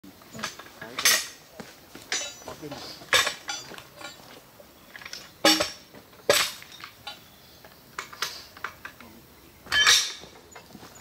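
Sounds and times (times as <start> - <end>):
metal tools clanking on rail: 0.3 - 11.0.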